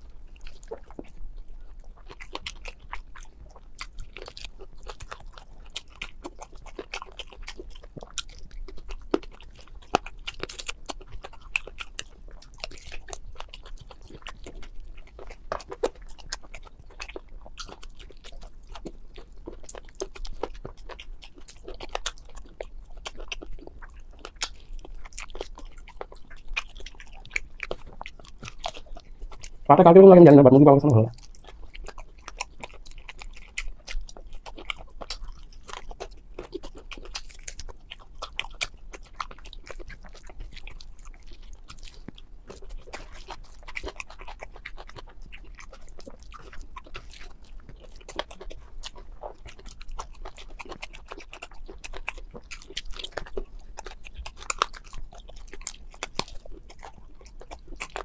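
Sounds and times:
wet chewing and smacking: 0:00.0 - 0:58.0.

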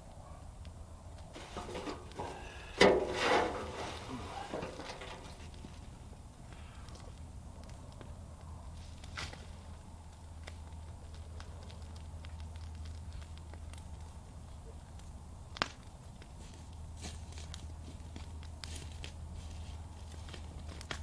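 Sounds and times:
fire crackling and popping: 0:00.0 - 0:21.0.

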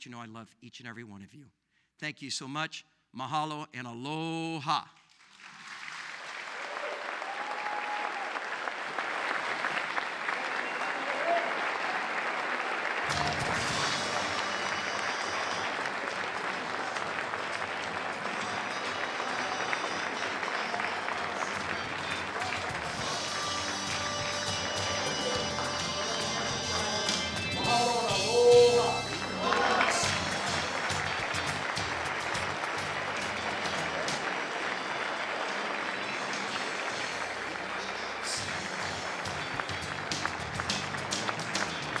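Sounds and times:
audience applauding: 0:05.1 - 0:42.0
music with steady bass line: 0:13.1 - 0:15.2, 0:21.2 - 0:34.3, 0:38.2 - 0:42.0.

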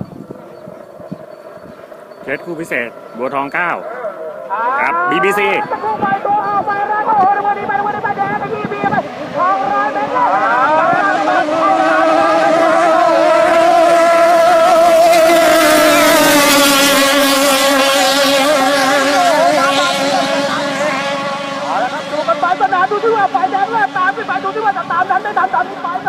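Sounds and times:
boat engine running flat out: 0:00.0 - 0:26.0.

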